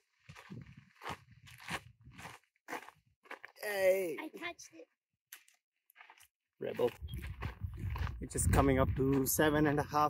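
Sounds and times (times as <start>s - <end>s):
footsteps crunching on dirt: 0.0s - 10.0s.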